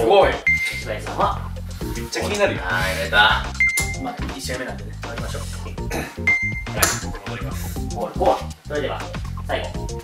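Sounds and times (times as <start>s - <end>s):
background music: 0.0s - 10.0s
bright single-pitched ding: 3.6s - 4.0s.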